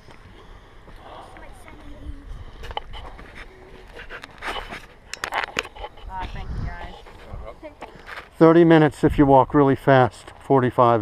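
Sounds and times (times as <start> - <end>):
footsteps on gravel: 0.1 - 8.4.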